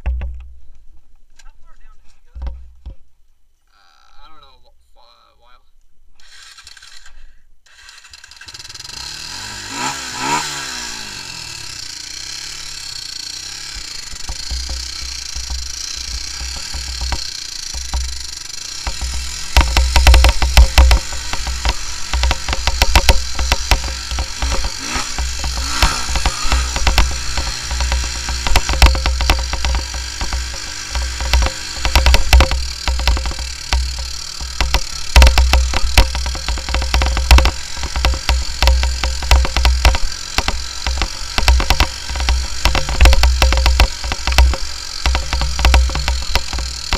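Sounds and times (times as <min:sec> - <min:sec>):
quad engine revving: 0:07.7 - 0:46.9.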